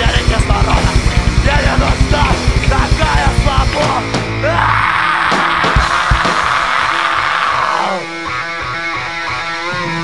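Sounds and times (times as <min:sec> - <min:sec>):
distorted electric guitars: 0:00.0 - 0:10.0
live rock band: 0:00.0 - 0:10.0.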